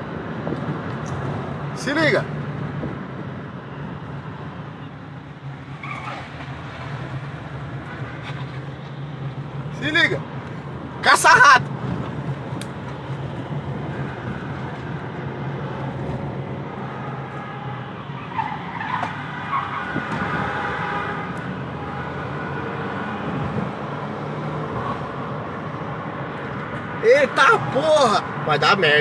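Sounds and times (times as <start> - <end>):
road and tyre noise: 0.0 - 29.0.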